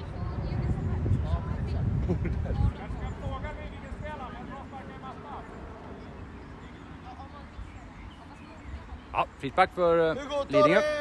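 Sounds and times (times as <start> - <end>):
distant children calling: 2.7 - 11.0.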